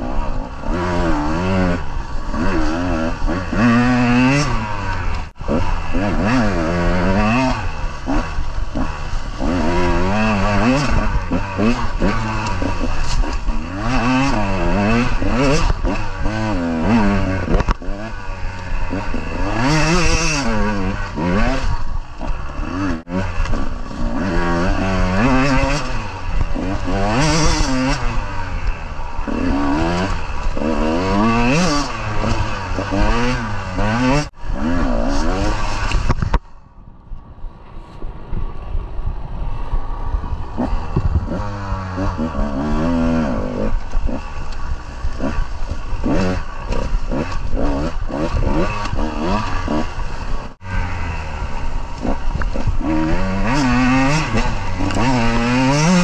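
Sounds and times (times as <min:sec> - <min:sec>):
dirt bike engine revving: 0:00.0 - 0:36.6, 0:40.0 - 0:56.0.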